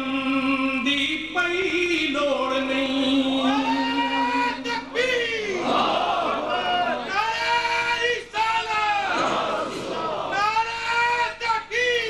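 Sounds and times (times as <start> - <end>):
man singing: 0.0 - 5.6
crowd of men calling out: 3.4 - 11.7.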